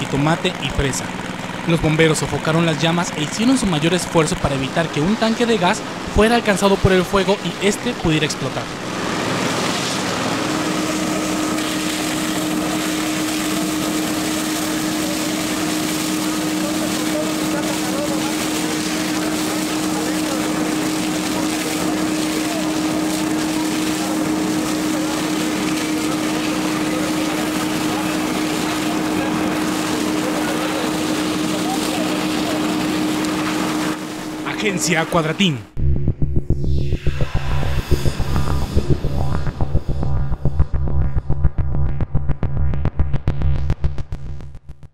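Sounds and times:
fire engine pump humming: 0.0 - 35.8, 36.6 - 40.8
water hissing from fire hose: 0.2 - 35.3.

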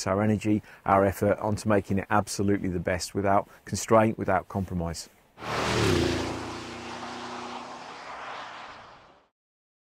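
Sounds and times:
car engine driving past: 5.4 - 9.3.

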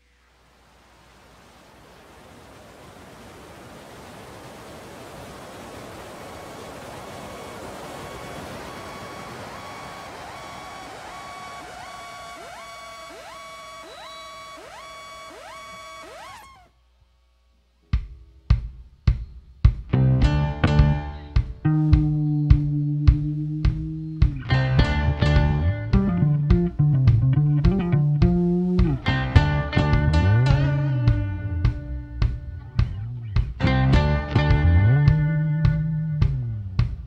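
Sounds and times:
electronic noise swell: 6.9 - 16.7.

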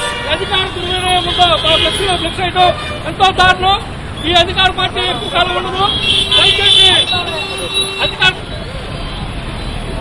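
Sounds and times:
street traffic: 0.0 - 10.0.

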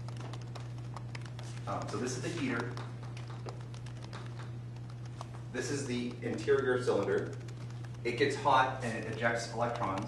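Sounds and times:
chalk tapping on chalkboard: 0.0 - 10.0
steady low hum: 0.0 - 10.0.

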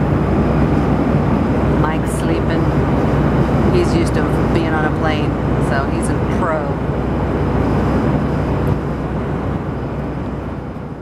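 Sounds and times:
jet airliner cabin noise: 0.0 - 11.0.

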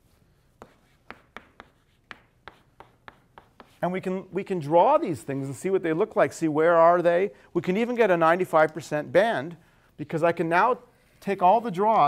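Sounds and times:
chalk tapping on blackboard: 0.6 - 3.9.

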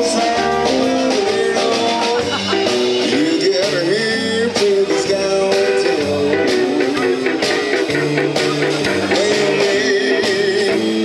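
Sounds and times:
bass guitar: 0.0 - 11.0
drum kit beat: 0.0 - 11.0
electric guitar lead: 0.0 - 11.0.

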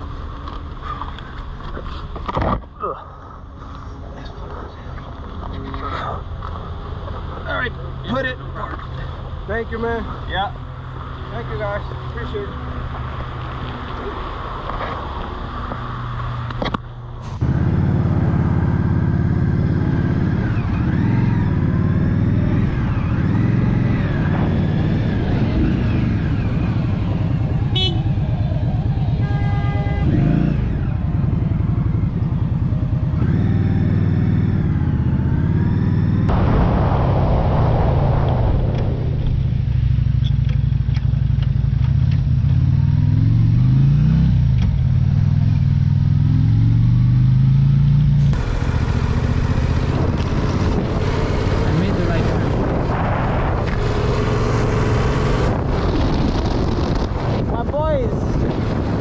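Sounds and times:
road and wind noise: 0.0 - 59.0
motorcycle engine revving: 17.3 - 59.0.

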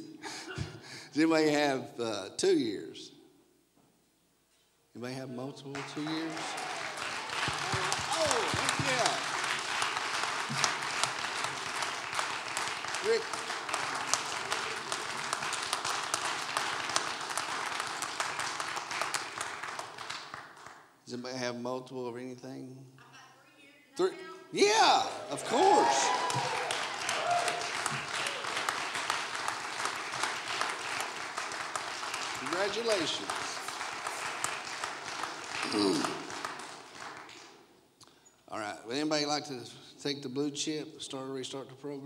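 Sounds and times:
audience clapping: 5.6 - 21.0, 24.6 - 37.7.

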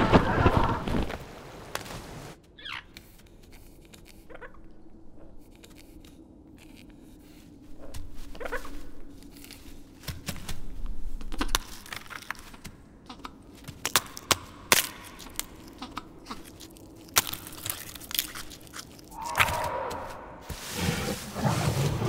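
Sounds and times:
low steady hum: 0.0 - 19.3
clicks crunches and scrapes: 0.1 - 4.5, 5.2 - 19.6
short falling creature call: 19.2 - 20.4.

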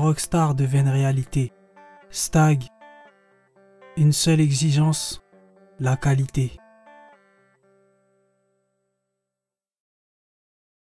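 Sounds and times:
plucked guitar notes ringing: 0.0 - 9.0.

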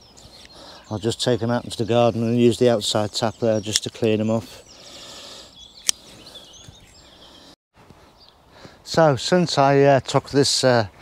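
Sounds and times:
birds chirping faintly: 0.0 - 9.7
outdoor background noise: 0.0 - 11.0
sharp click: 5.8 - 6.0.

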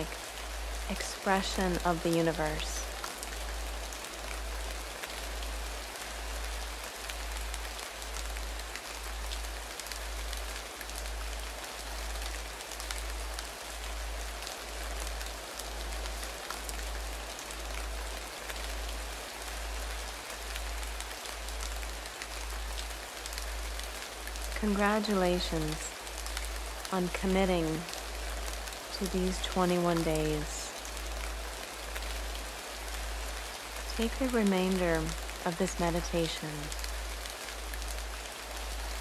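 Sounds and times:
rain hiss with drops: 0.0 - 39.0.

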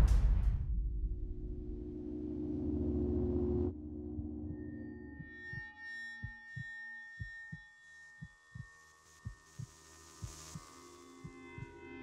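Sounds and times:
faint drone of held tones: 1.7 - 12.0.

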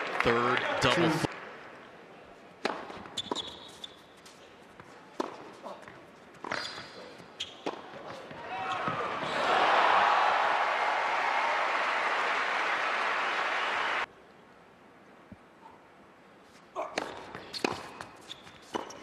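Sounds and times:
crowd cheering and applauding: 0.0 - 1.3, 9.1 - 14.1
racket hitting ball: 2.6 - 3.7, 7.6 - 8.4, 16.8 - 19.0
tennis ball bouncing: 2.6 - 4.0, 4.8 - 9.0, 16.8 - 19.0
shoe squeaks: 3.0 - 4.6, 6.4 - 9.0, 17.4 - 19.0.

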